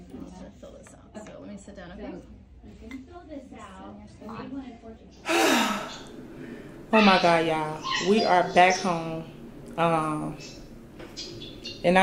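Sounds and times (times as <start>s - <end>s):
woman sighing: 5.2s - 6.6s.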